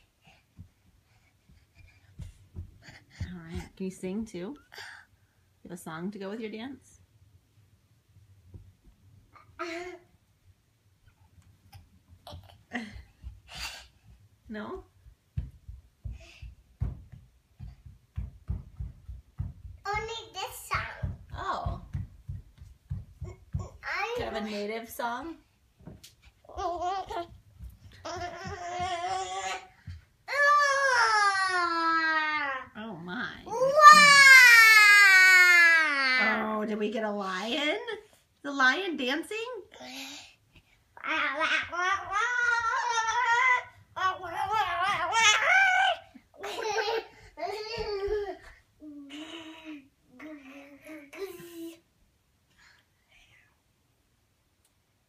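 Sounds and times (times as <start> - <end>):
soft thumps of dancing feet: 0.5 - 4.4, 12.7 - 30.8, 46.5 - 48.6.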